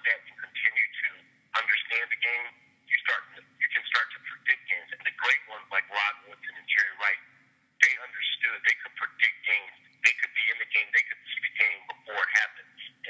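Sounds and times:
faint steady hum: 0:00.0 - 0:13.0
person talking over telephone: 0:00.0 - 0:13.0.

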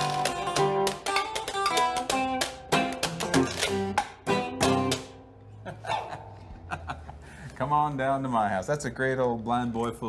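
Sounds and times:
strummed guitar chords: 0:00.0 - 0:05.6
person laughing: 0:05.6 - 0:07.4.

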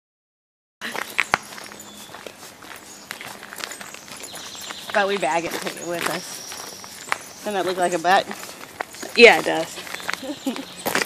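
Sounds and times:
footsteps on gravel: 0:00.8 - 0:11.0.

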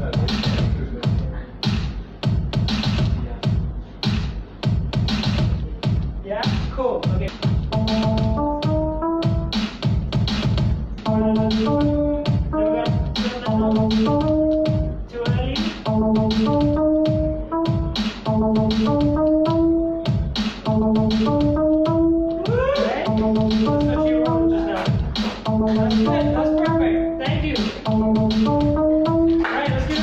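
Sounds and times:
electronic drum beat: 0:00.0 - 0:30.0
repeating synth melody: 0:07.5 - 0:30.0.

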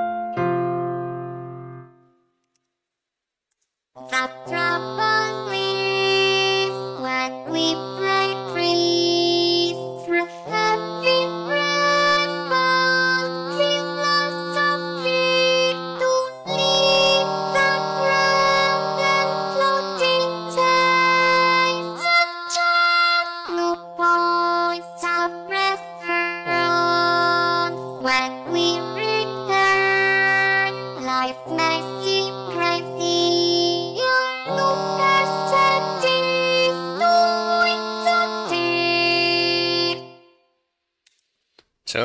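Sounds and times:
synthesized voice singing: 0:04.0 - 0:40.1.

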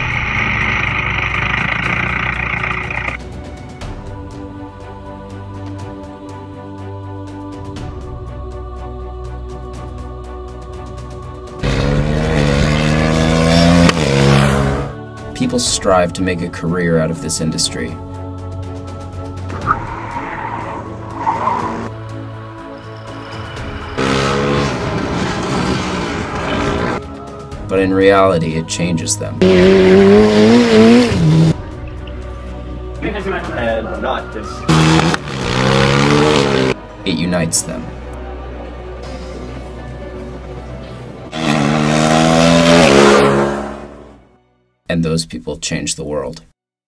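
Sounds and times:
race car engine running: 0:00.0 - 0:03.3, 0:24.0 - 0:27.0, 0:29.4 - 0:31.6, 0:34.7 - 0:36.8
background music: 0:00.0 - 0:46.5.

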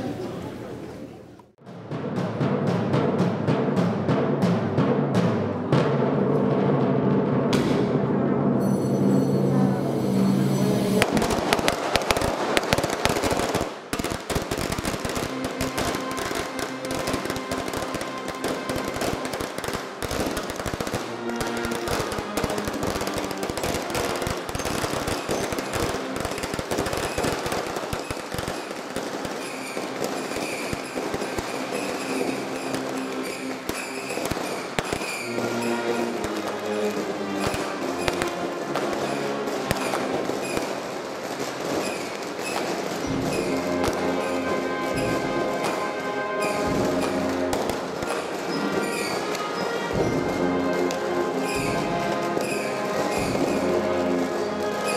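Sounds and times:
band playing slow march: 0:01.6 - 0:08.7, 0:09.8 - 0:54.9
firecrackers crackling: 0:10.4 - 0:54.9.

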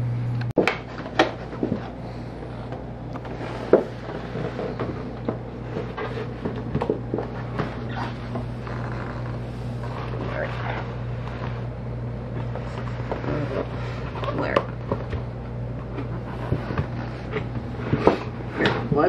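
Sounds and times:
steady low hum: 0:00.0 - 0:19.0
cardboard rubbing and scraping: 0:03.2 - 0:15.2, 0:16.0 - 0:18.9.

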